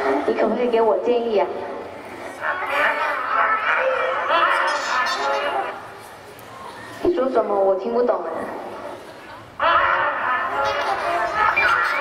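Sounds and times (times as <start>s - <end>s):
high-pitched bird-like chatter: 2.4s - 5.9s.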